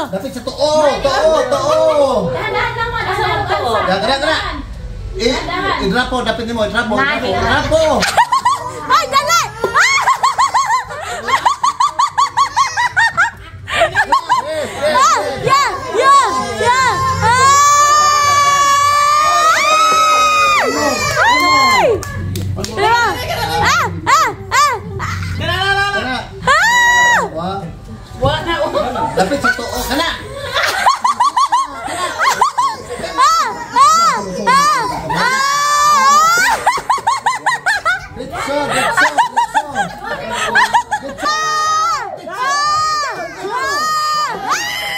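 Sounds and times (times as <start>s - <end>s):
people laughing: 7.3s - 27.3s, 28.5s - 44.9s.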